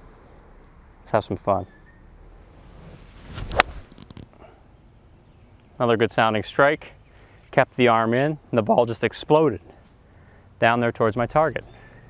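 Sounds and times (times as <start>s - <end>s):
golf club whoosh: 2.5s - 4.3s
golf club striking ball: 3.3s - 4.0s.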